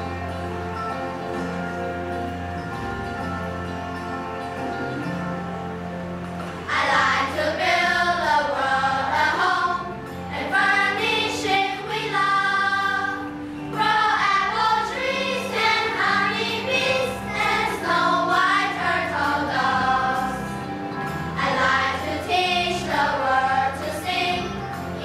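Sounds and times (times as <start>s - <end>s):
instrumental accompaniment: 0.0s - 25.0s
children's choir singing: 6.6s - 25.0s.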